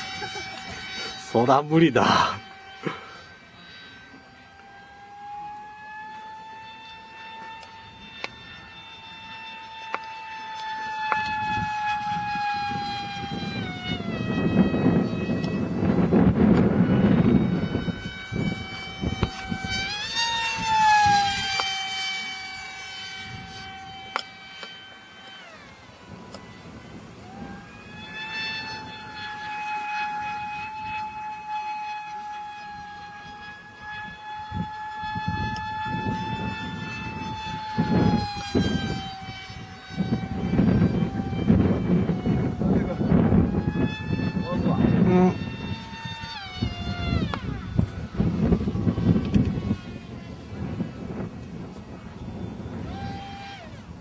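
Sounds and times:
rc plane motor whine: 0:00.0 - 0:54.0.

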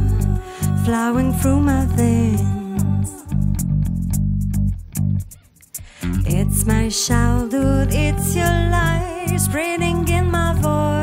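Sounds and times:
electric bass guitar notes: 0:00.0 - 0:11.0.

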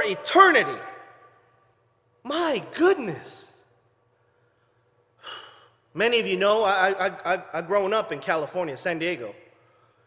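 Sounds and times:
man breathing in: 0:04.2 - 0:05.9.

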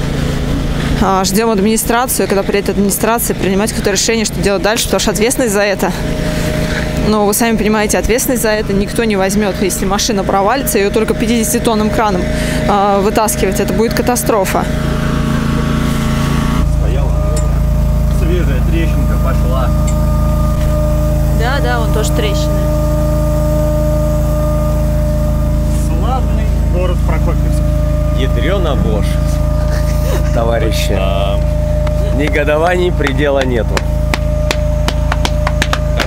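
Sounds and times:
diesel truck engine idling: 0:00.0 - 0:36.0
steady low hum: 0:00.0 - 0:36.0
thin held tone: 0:14.8 - 0:36.0.

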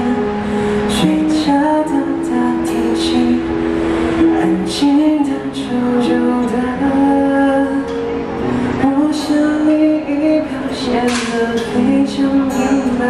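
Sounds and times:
acoustic guitar: 0:00.0 - 0:13.0
keyboard: 0:00.0 - 0:13.0
person singing pop ballad: 0:00.0 - 0:13.0.

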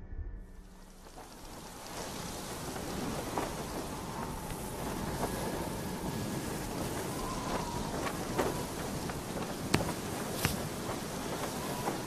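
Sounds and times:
low rumble: 0:00.0 - 0:08.4
rain falling: 0:00.6 - 0:12.0.

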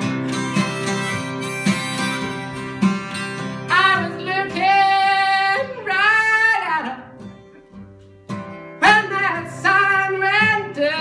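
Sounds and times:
harmonica held notes: 0:00.0 - 0:03.7
strummed acoustic guitar: 0:00.0 - 0:11.0.

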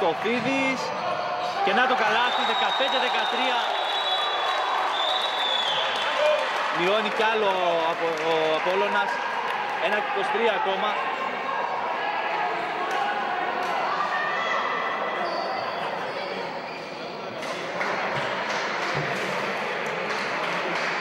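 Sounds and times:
crowd talking and calling: 0:00.0 - 0:21.0.

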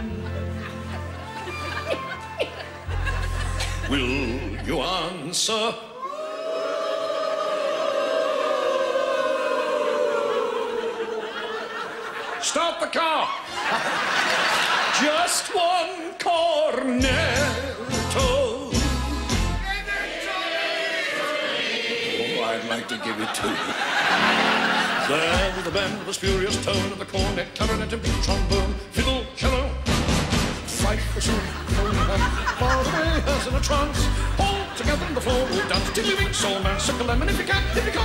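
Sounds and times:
audience laughing: 0:00.0 - 0:05.4, 0:06.0 - 0:16.1, 0:20.2 - 0:27.5, 0:30.7 - 0:38.0
person chuckling: 0:01.5 - 0:04.8.

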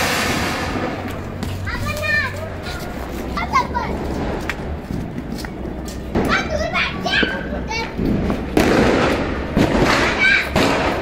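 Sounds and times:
rushing noise: 0:00.0 - 0:05.3
children shouting: 0:10.0 - 0:10.8.

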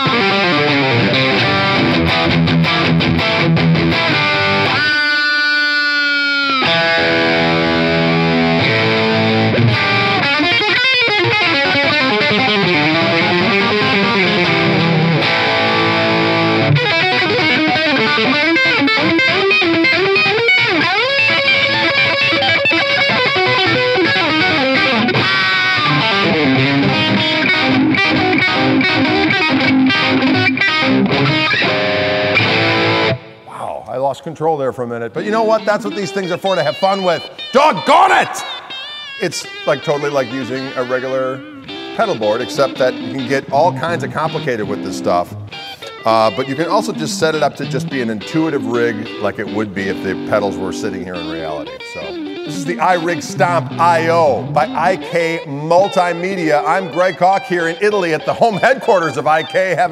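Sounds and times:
distorted electric guitar lead: 0:00.0 - 0:33.6, 0:35.2 - 0:59.9.

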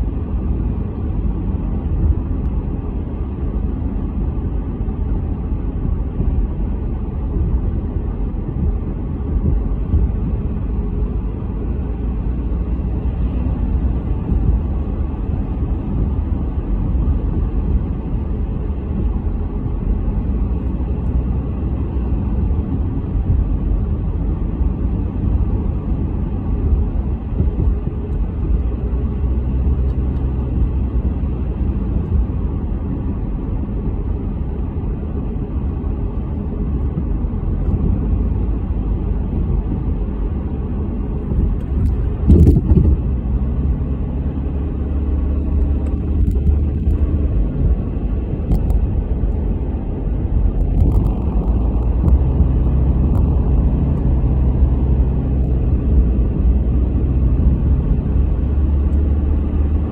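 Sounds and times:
car road and engine rumble: 0:00.0 - 0:59.9.

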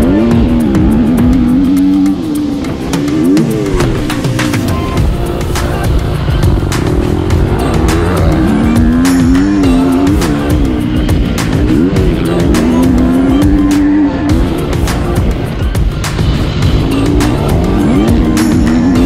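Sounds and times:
motocross bike engine revving: 0:00.0 - 0:19.0.

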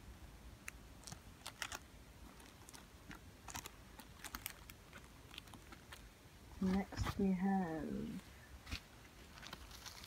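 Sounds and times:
plastic packets clicking and crinkling: 0:00.6 - 0:06.8, 0:09.2 - 0:10.0.

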